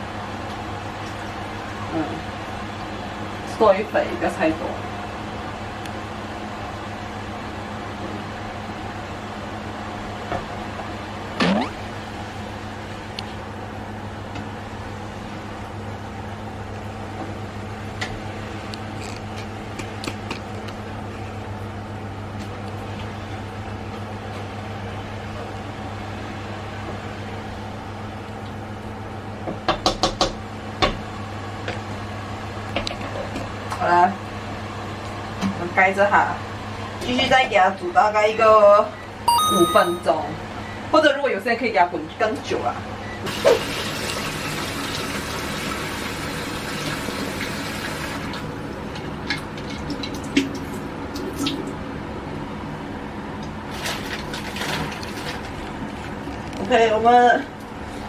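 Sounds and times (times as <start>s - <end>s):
electric hob hum and fan whir: 0.0s - 58.0s.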